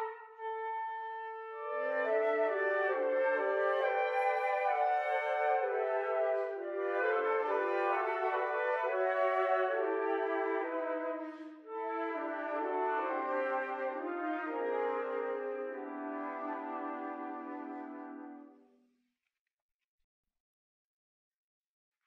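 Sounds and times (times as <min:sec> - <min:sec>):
flutes playing low chords: 0:00.0 - 0:18.7.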